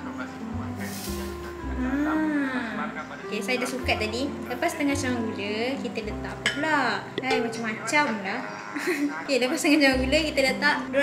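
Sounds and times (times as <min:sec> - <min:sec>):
background music with held notes: 0:00.0 - 0:11.0
sugar pouring hiss: 0:00.8 - 0:01.5.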